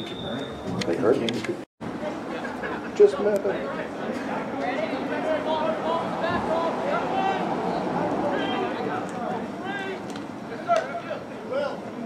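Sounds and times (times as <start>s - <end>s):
distant voices calling out: 3.6s - 12.0s.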